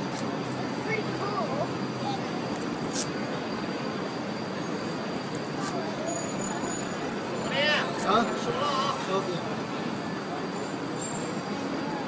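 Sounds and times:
city street traffic: 0:00.0 - 0:12.0
people's voices: 0:00.1 - 0:03.4.

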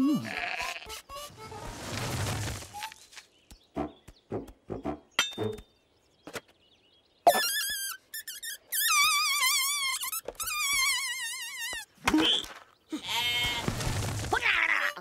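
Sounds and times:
cartoon sheep bleating: 0:00.0 - 0:01.0, 0:13.0 - 0:13.6.

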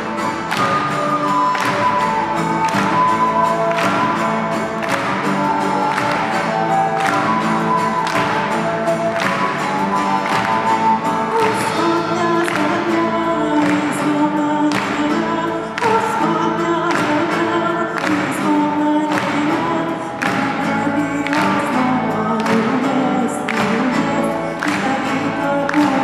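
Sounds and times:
live band playing: 0:00.0 - 0:26.0
voices singing together: 0:00.0 - 0:26.0.

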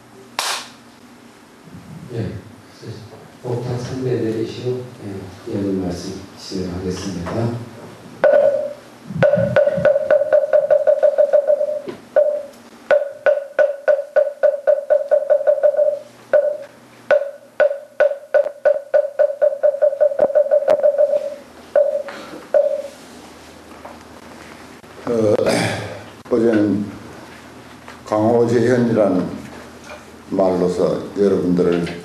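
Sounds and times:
wooden fish drum knocks: 0:08.2 - 0:21.2.

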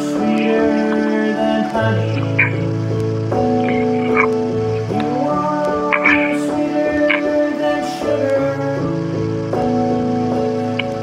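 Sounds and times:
keyboard organ-like chords: 0:00.0 - 0:11.0.

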